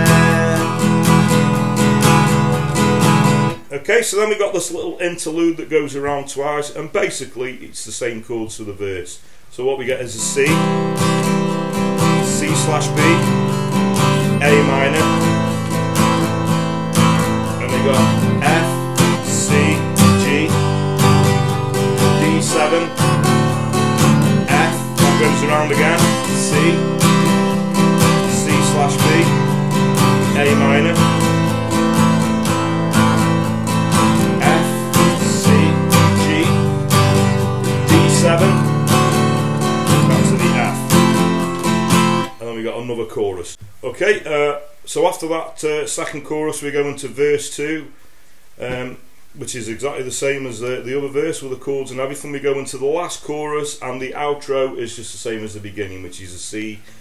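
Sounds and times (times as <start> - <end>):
acoustic guitar strumming chords: 0.0 - 4.4, 10.1 - 42.9.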